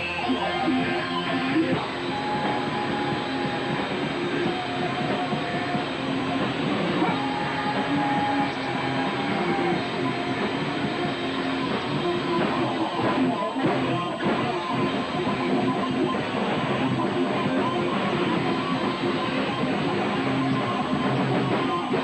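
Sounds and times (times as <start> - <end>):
electric guitar held notes: 0.0 - 22.0
rock band playing live: 0.0 - 22.0.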